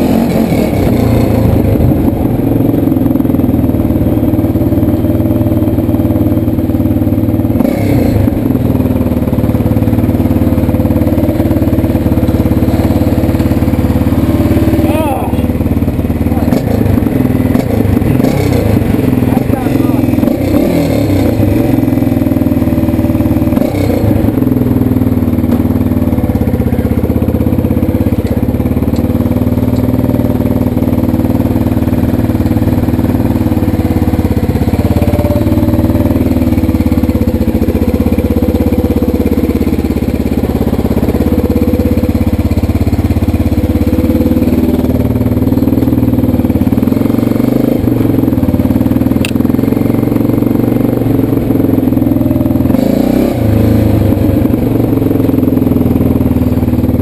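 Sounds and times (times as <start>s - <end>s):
quad bike engine running: 0.0s - 57.0s.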